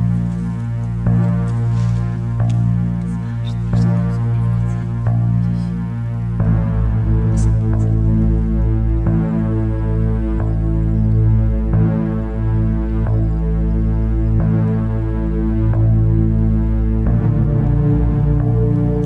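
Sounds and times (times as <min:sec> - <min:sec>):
droning synthesizer chord: 0:00.0 - 0:19.0.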